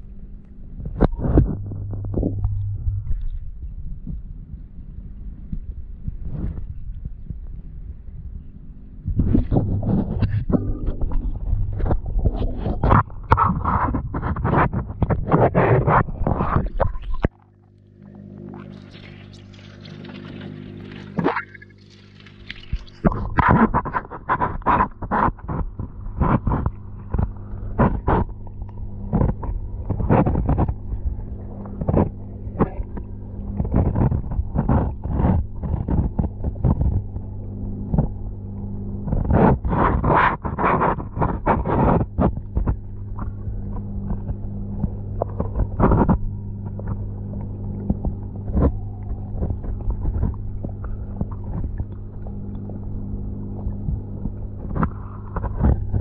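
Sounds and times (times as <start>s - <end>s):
aquarium pump humming: 0.0s - 56.0s
underwater clicks and knocks: 0.0s - 56.0s.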